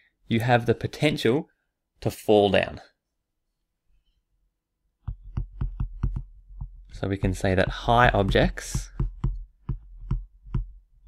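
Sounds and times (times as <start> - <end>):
stylus tapping on a tablet: 5.0 - 10.9.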